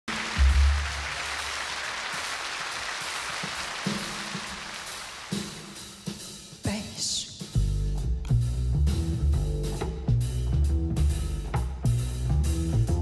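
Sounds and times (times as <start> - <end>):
audience applause: 0.0 - 6.0
low band notes: 7.4 - 13.0.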